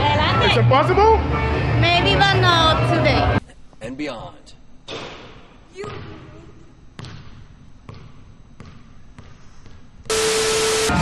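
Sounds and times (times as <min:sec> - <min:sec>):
basketball bouncing on hard floor: 0:04.9 - 0:06.3, 0:07.0 - 0:09.9.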